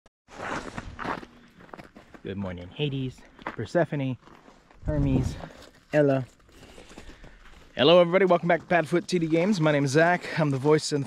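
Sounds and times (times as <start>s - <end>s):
footsteps crunching in snow: 0.3s - 11.0s.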